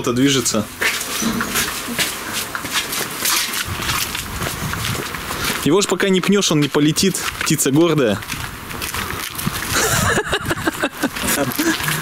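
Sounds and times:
footsteps on stone path: 0:00.0 - 0:12.0.

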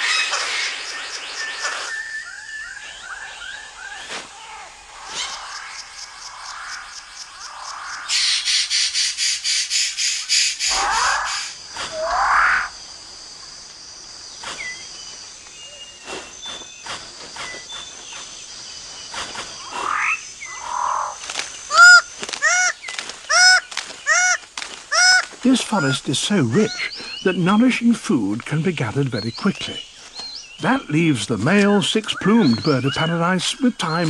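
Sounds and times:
loud arching animal calls: 0:01.6 - 0:12.8, 0:19.6 - 0:27.4.

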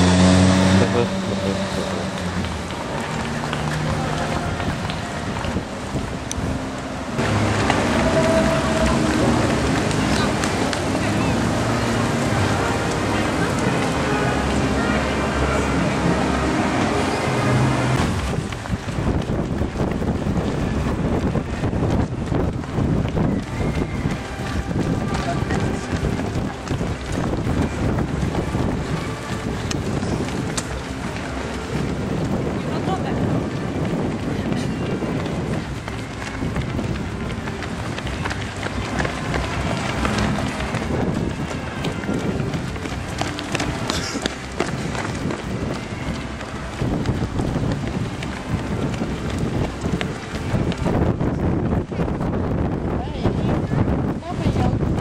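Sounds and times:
indistinct voices: 0:00.0 - 0:19.2
runners' footsteps on asphalt: 0:00.0 - 0:55.0.

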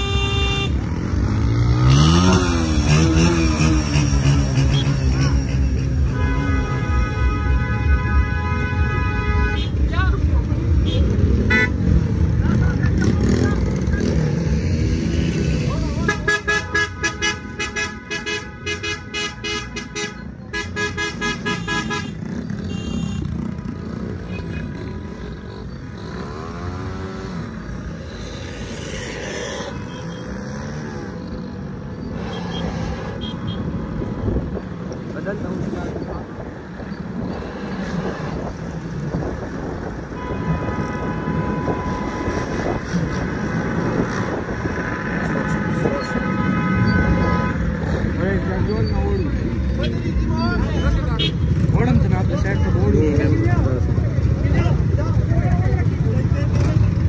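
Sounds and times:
vehicle revving: 0:00.0 - 0:07.6, 0:09.4 - 0:57.0
car horns honking: 0:00.0 - 0:10.0, 0:10.8 - 0:12.2, 0:15.9 - 0:25.2, 0:29.6 - 0:30.8, 0:32.1 - 0:33.8, 0:39.8 - 0:42.9, 0:44.0 - 0:52.0
car and motorcycle engines: 0:00.0 - 0:57.0.

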